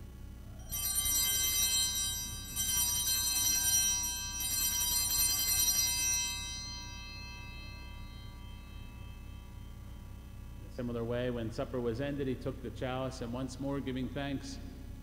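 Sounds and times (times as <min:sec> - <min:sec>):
altar bells ringing: 0:00.5 - 0:11.5.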